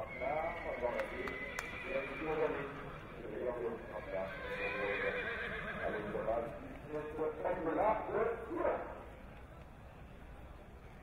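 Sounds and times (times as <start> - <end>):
horse whinnying: 0.0 - 3.2, 3.8 - 6.2.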